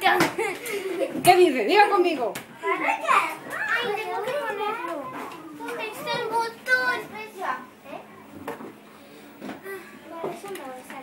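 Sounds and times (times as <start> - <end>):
children talking and calling: 0.0 - 11.0
surrounding speech: 0.0 - 11.0.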